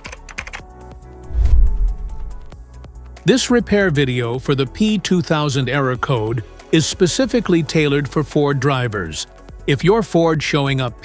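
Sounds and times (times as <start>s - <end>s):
intro music: 1.1s - 2.8s
deep bass hit: 1.2s - 2.6s.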